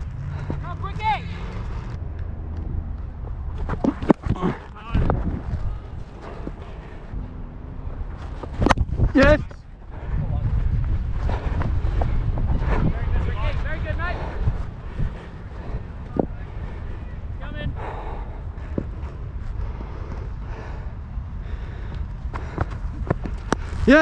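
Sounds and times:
wind rumbling on microphone: 1.4 - 24.0.

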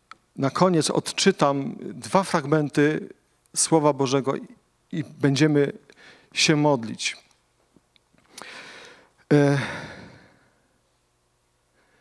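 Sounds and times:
man sighing: 8.4 - 10.6.

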